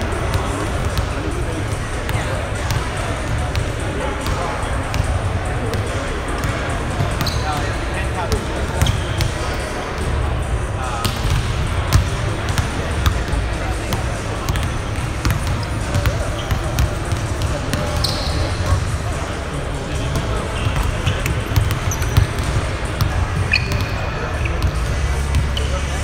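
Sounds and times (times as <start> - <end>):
low hum of large hall: 0.0 - 26.0.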